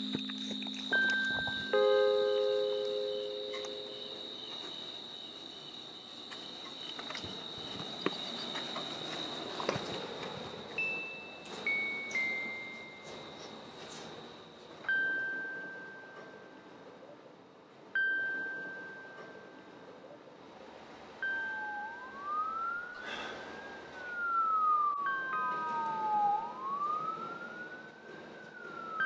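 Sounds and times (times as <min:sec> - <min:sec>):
chime notes: 0:00.0 - 0:04.5, 0:25.0 - 0:26.3
police siren wailing: 0:21.4 - 0:29.0.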